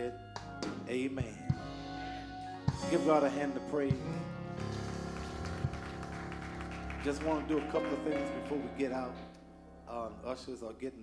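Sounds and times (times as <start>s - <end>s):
sustained instrumental chord: 1.6s - 11.0s.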